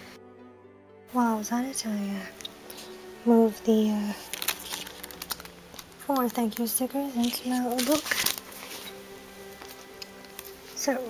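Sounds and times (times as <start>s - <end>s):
paper pages handled clicks: 4.3s - 9.0s.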